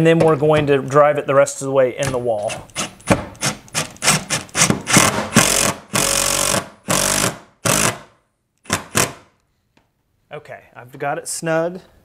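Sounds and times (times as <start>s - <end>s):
impact driver bursts: 2.8s - 9.3s.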